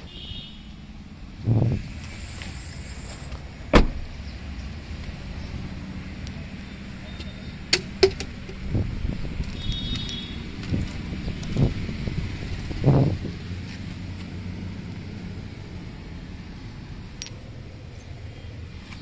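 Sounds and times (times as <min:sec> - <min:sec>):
car door thumps: 0:03.7 - 0:04.1.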